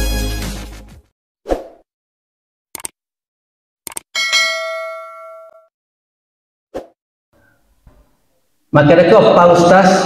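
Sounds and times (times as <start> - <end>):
short clicks: 2.8 - 3.0, 3.9 - 4.1
bell-like ding: 4.2 - 5.7.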